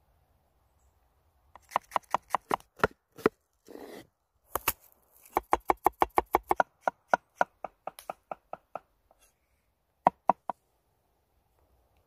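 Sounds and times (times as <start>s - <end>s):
knife chopping on wooden board: 1.6s - 3.4s.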